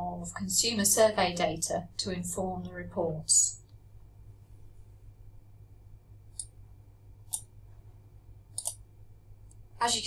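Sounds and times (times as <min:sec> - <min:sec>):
faint steady low hum: 0:00.0 - 0:10.0
computer mouse clicks: 0:07.2 - 0:07.5, 0:08.5 - 0:08.8.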